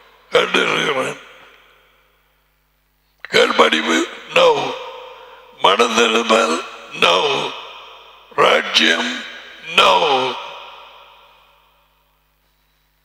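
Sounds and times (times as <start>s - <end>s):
man's echoing voice over microphone: 0.0s - 2.1s, 3.2s - 12.1s.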